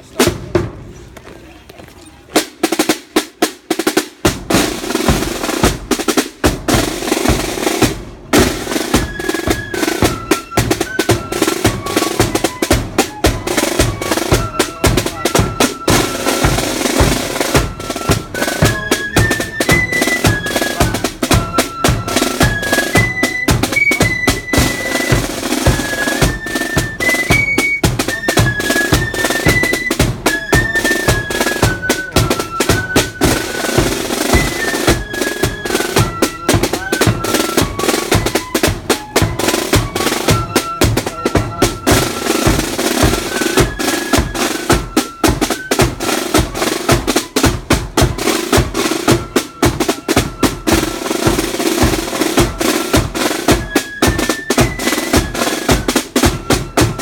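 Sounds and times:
side drums beating: 0:00.0 - 0:00.9, 0:02.4 - 0:57.0
flutes playing a melody: 0:06.7 - 0:57.0.

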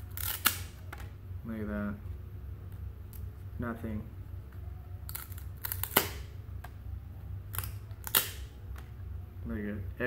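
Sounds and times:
cards snapping and swishing: 0:00.0 - 0:01.1, 0:05.1 - 0:06.4, 0:07.5 - 0:08.9.

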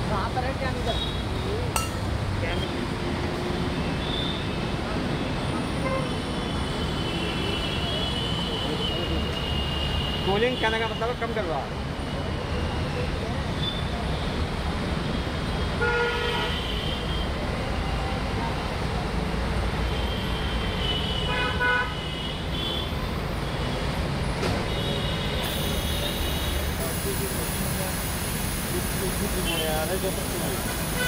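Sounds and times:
low rumble of road traffic: 0:00.0 - 0:31.0.

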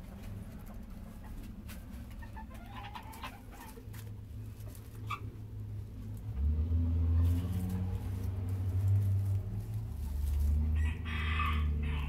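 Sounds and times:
chicken clucking: 0:00.0 - 0:06.1.

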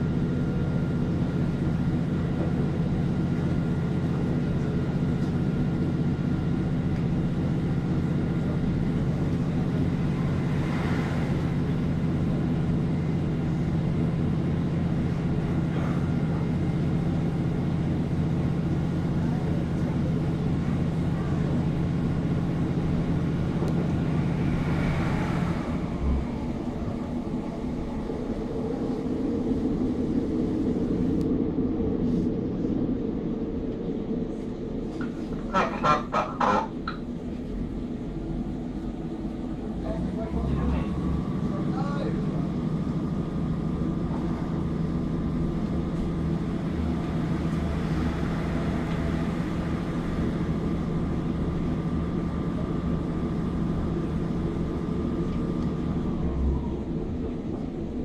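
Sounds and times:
diesel engine humming: 0:00.0 - 0:58.0
train running noise from inside: 0:00.0 - 0:58.0.

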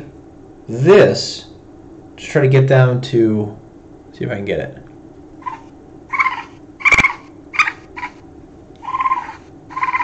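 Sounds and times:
baby raccoon chittering calls: 0:05.4 - 0:08.2, 0:08.8 - 0:10.0
sharp click: 0:06.9 - 0:07.2.

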